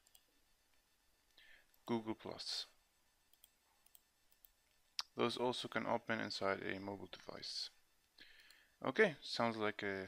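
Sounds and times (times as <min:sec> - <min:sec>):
computer mouse clicks: 0:00.0 - 0:00.3, 0:03.3 - 0:05.1, 0:08.4 - 0:08.6.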